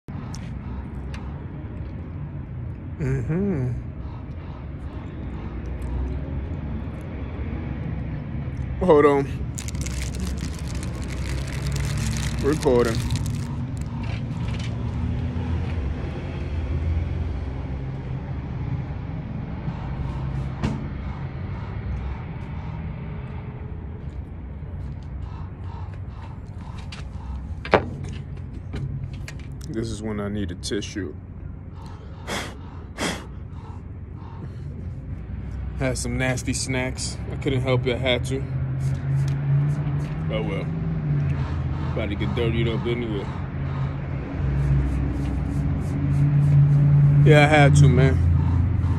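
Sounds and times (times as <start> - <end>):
crackling rubs on phone microphone: 9.6 - 14.6
sniffing through a runny nose: 32.0 - 33.4.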